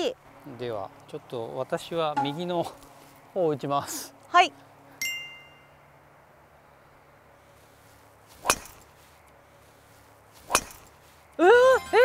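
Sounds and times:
golf ball hit off tee: 8.4s - 8.8s, 10.5s - 10.9s.

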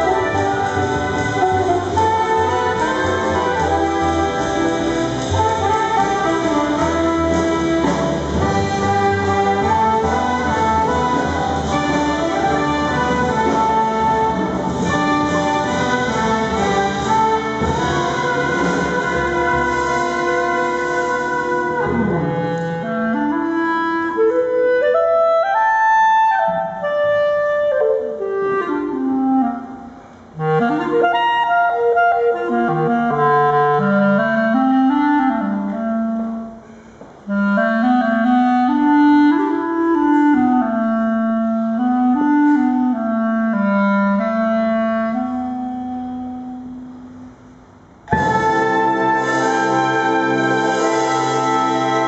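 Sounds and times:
ensemble playing: 0.0s - 25.4s, 26.3s - 52.0s
clarinet solo melody: 0.0s - 47.3s, 48.1s - 52.0s.

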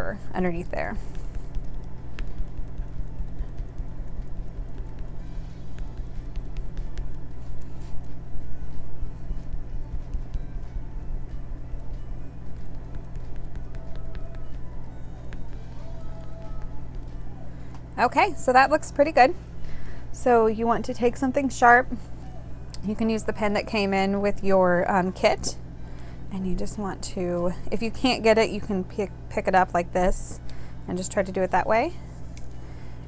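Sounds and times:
sponge dabbing paint taps: 12.7s - 14.6s.

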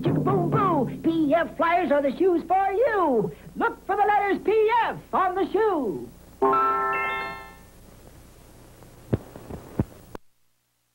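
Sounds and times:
faint tape hiss: 0.0s - 10.9s
low electrical hum: 0.0s - 10.9s.

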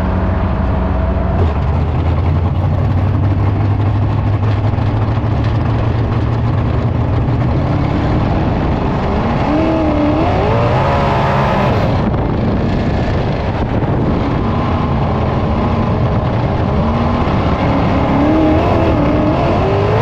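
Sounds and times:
racing car engine accelerating: 0.0s - 20.0s.

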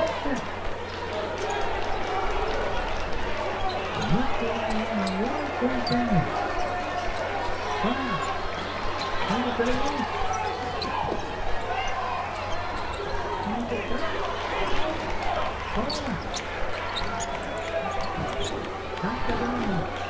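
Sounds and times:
people's voices in a hall: 0.0s - 20.0s.

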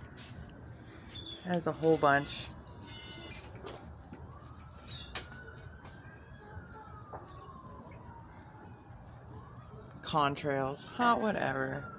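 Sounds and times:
faint siren wailing: 0.0s - 11.9s.

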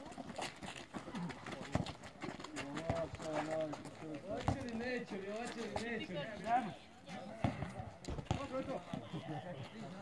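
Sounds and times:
handball bouncing on asphalt: 0.0s - 6.1s, 7.4s - 9.1s
players' footsteps: 0.0s - 6.7s, 7.4s - 10.0s.

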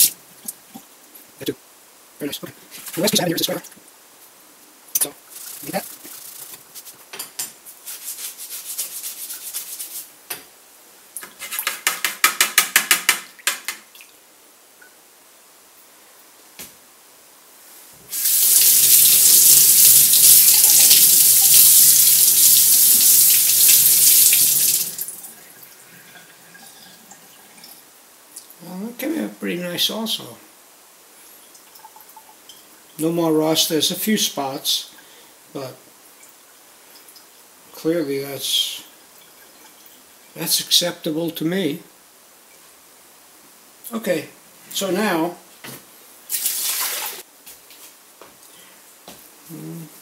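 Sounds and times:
sink tap running: 18.2s - 25.2s.

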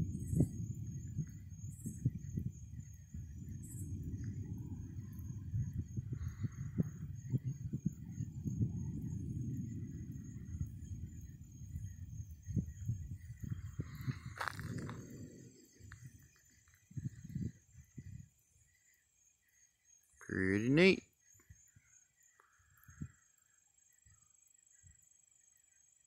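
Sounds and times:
thunder rumbling: 0.0s - 18.3s.

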